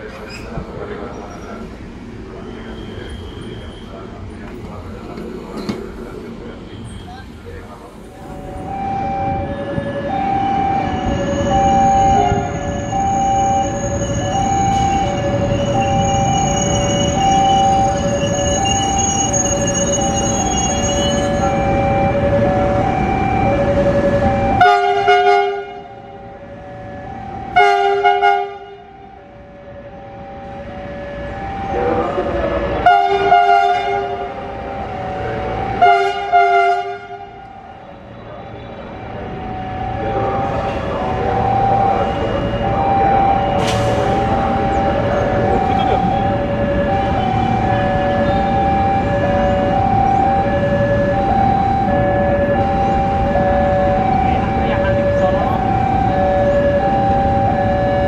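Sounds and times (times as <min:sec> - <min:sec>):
train rumble: 0:00.0 - 0:58.0
locomotive horn blasts: 0:08.3 - 0:15.2, 0:24.4 - 0:26.1, 0:27.4 - 0:29.1, 0:32.8 - 0:34.4, 0:35.6 - 0:37.5.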